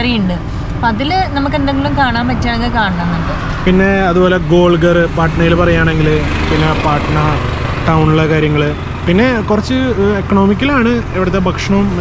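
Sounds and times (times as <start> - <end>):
steady low hum: 0.0 - 12.0
man talking: 3.6 - 12.0.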